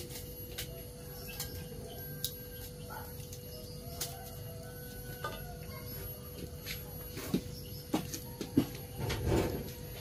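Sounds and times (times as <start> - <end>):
distant chicken clucks: 0.0 - 10.0.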